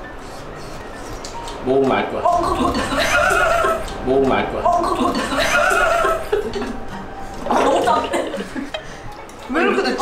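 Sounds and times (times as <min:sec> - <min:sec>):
background music: 0:00.0 - 0:10.0
people reacting: 0:02.3 - 0:06.8
laughter: 0:05.0 - 0:06.8, 0:07.5 - 0:08.9.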